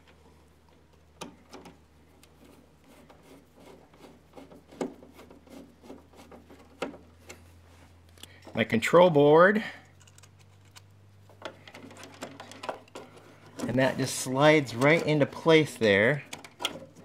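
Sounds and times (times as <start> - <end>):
low steady hum: 0.0 - 17.0
small clicks of wire connectors: 8.1 - 8.4, 9.8 - 13.6.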